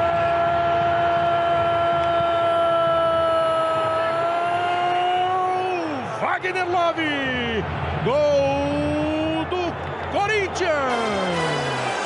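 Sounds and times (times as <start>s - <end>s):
commentator shouting goal call: 8.1s - 11.8s.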